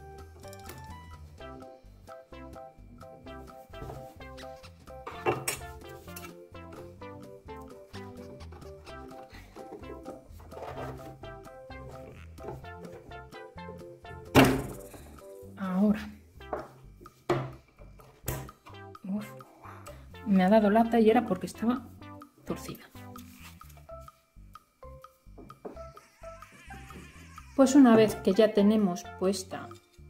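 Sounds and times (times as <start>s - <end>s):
music of plucked notes: 0.0s - 15.5s, 24.8s - 30.0s
metal knocking on wooden worktop: 5.0s - 5.7s, 16.4s - 18.5s.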